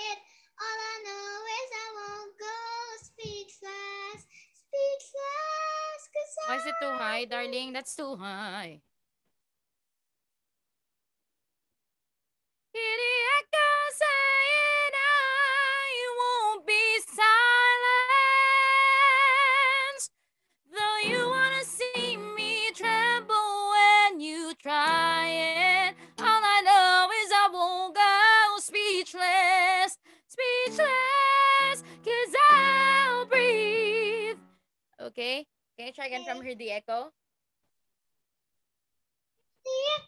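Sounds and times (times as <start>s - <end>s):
woman singing with vibrato: 6.5s - 7.2s, 12.8s - 20.1s, 20.7s - 34.4s.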